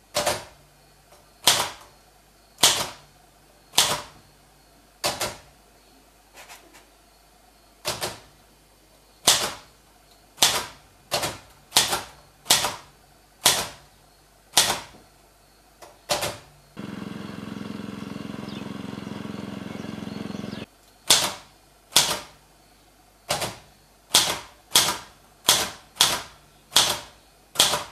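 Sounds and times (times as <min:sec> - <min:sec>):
rasping mechanical sound: 0:16.8 - 0:20.7.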